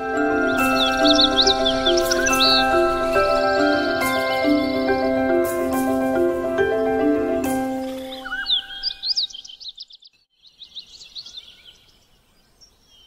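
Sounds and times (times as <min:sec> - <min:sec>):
melodic instrumental music: 0:00.0 - 0:09.2
bird chirping and trilling: 0:00.2 - 0:05.8, 0:07.7 - 0:13.0.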